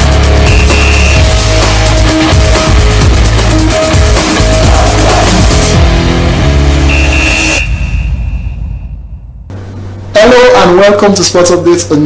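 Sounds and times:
electronic theme music: 0.0s - 11.1s
high tone: 0.4s - 1.4s, 6.9s - 10.4s.

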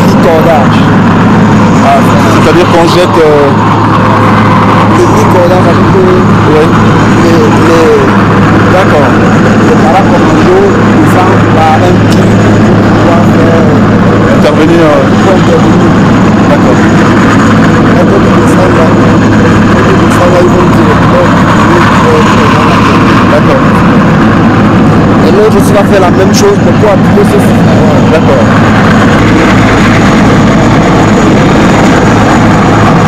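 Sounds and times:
helicopter hovering overhead: 0.0s - 33.0s.

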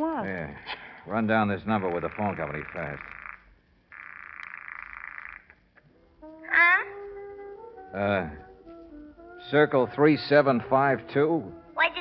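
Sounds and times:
electric buzzer: 1.7s - 5.6s.

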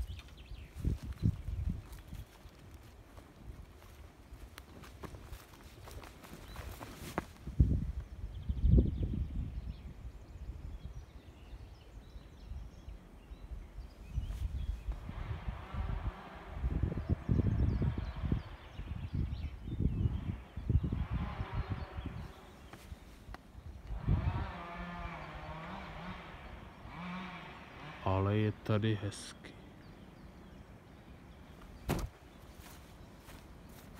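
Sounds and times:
footsteps through grass: 0.0s - 7.8s, 31.6s - 33.9s
wind rumbling on microphone: 0.0s - 27.6s.

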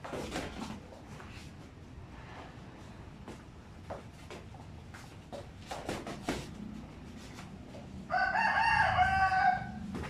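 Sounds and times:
rooster crowing: 8.0s - 10.0s.

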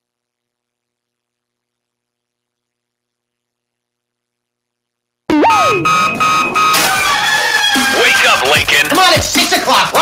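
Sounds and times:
rooster crowing: 6.8s - 8.0s
music with voice snippets: 6.9s - 10.0s.

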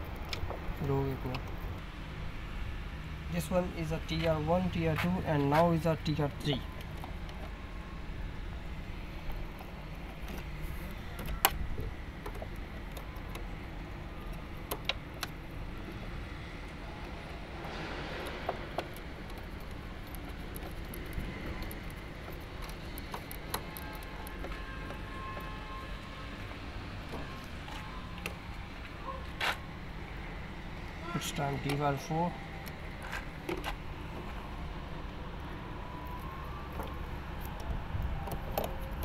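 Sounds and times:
wires rustling: 9.1s - 39.0s
wire connectors clicking: 9.2s - 15.6s, 18.2s - 28.7s, 35.4s - 39.0s.

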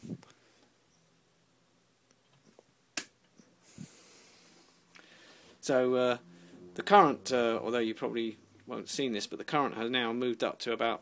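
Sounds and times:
person exhaling near microphone: 3.6s - 5.6s.

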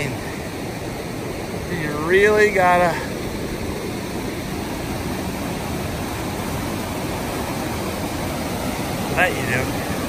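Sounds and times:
creek rushing over rocks: 0.0s - 10.0s.

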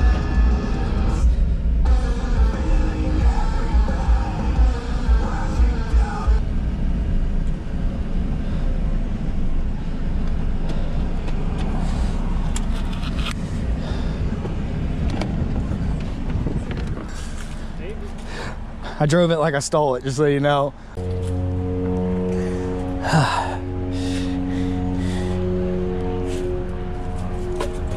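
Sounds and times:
background music: 0.0s - 6.4s, 21.0s - 27.9s
car engine and road rumble: 0.0s - 27.9s.

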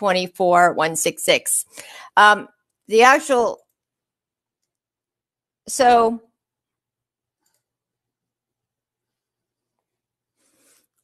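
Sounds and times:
soft rustle: 9.1s - 11.0s.

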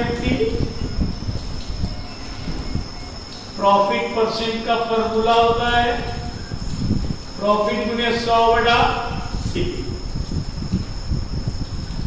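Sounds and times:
faint high whine: 0.0s - 12.0s
low uneven rumbling: 0.0s - 12.0s.

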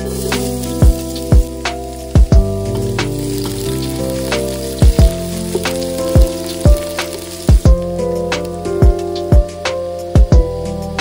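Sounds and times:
wooden spoon stirring: 0.0s - 8.0s
background music with a beat: 0.0s - 11.0s
onions sizzling in a pot: 0.0s - 11.0s.

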